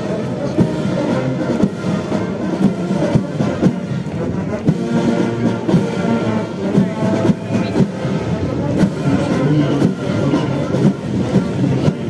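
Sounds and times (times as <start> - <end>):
military brass band playing: 0.0 - 12.0.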